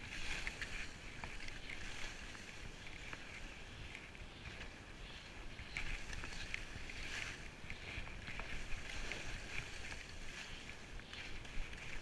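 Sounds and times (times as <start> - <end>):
skis scraping over snow: 0.0 - 12.0
wind on microphone: 0.0 - 12.0.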